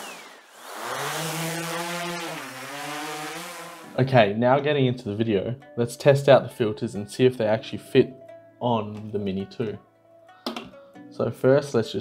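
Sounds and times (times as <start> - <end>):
drone propellers buzzing: 0.0 - 4.0.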